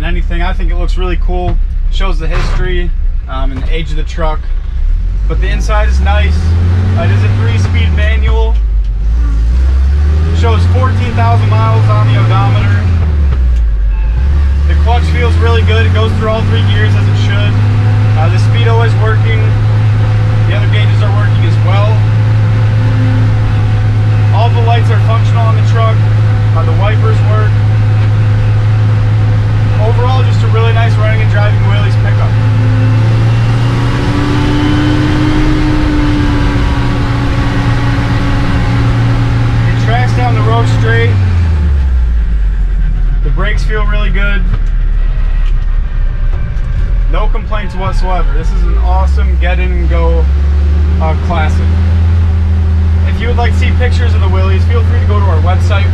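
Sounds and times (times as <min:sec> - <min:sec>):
pickup truck engine driving: 0:00.0 - 0:55.9.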